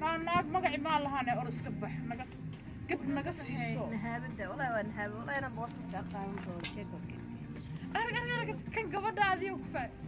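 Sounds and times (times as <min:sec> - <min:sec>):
woman talking: 0:00.0 - 0:10.0.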